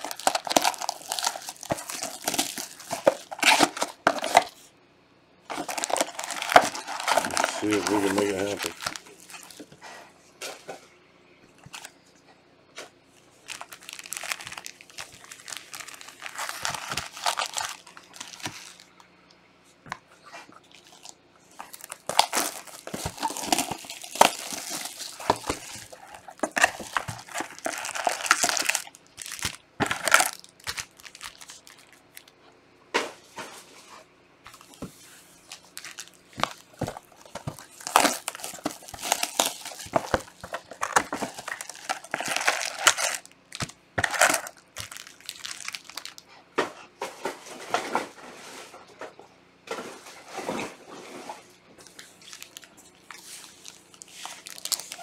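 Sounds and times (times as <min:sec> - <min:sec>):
plastic wrap crinkling and tearing: 0:00.0 - 0:04.6, 0:05.5 - 0:09.8, 0:13.3 - 0:19.1, 0:20.5 - 0:32.3, 0:34.5 - 0:46.3, 0:51.8 - 0:55.0.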